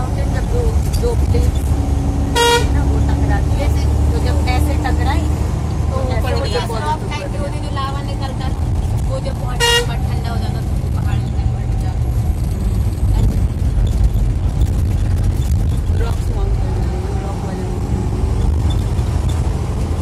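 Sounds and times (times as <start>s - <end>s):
bus engine running: 0.0s - 20.0s
short horn toots: 2.4s - 2.8s.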